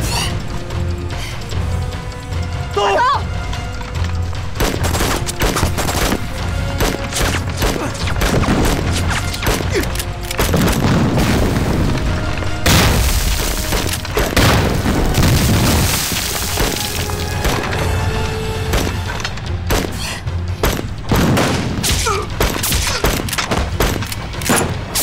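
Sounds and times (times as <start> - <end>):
background music: 0.0 - 25.0
rifle fire volleys: 4.2 - 17.7, 18.7 - 25.0
booming blasts: 10.4 - 17.9, 18.6 - 22.6.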